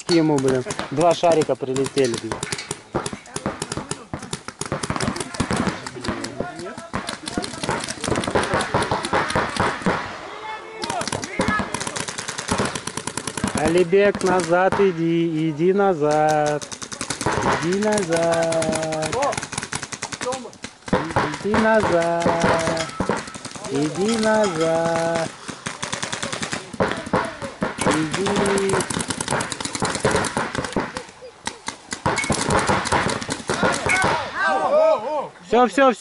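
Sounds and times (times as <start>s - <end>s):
paintball markers firing: 0.0s - 10.2s, 10.8s - 34.3s
person shouting: 33.8s - 35.3s.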